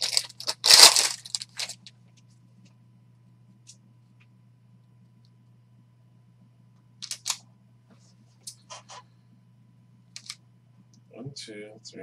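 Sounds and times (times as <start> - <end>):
low electrical hum: 0.0 - 12.0
cards clicking: 7.0 - 7.4, 10.2 - 10.4.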